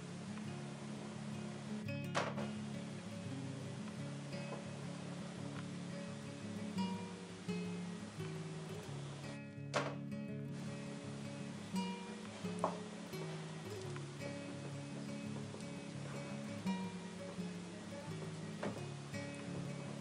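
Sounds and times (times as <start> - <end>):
acoustic guitar melody: 0.0 - 20.0.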